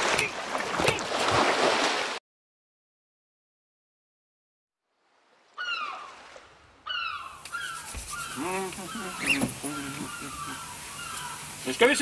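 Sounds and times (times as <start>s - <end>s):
bird cries and calls: 5.6s - 6.2s, 6.8s - 11.8s.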